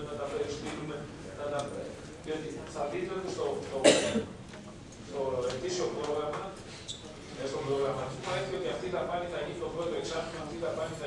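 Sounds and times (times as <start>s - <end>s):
man coughing: 3.8s - 4.3s.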